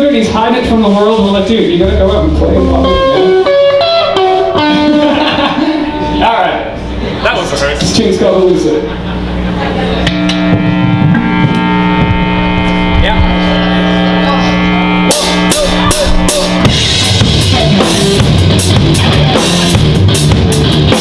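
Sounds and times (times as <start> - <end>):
rock band playing: 0.0 - 21.0
electric guitar chord: 2.0 - 21.0.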